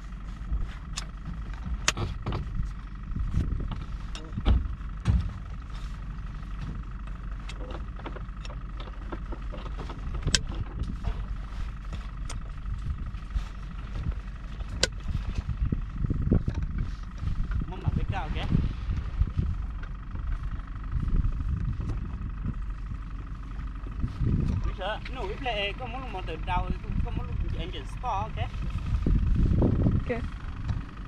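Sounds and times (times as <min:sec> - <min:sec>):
engine low rumble: 0:00.0 - 0:31.0.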